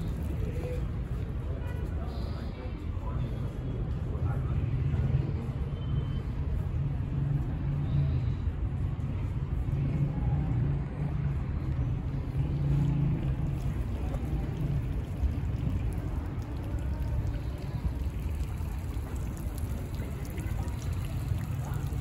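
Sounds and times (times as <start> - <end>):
low outdoor rumble: 6.6 - 22.0.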